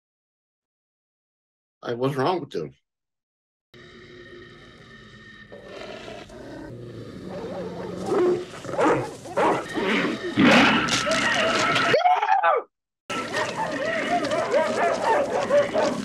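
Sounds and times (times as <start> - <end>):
low drone: 3.8 - 8.6
dog growling and snarling: 3.8 - 12.0, 13.2 - 16.0.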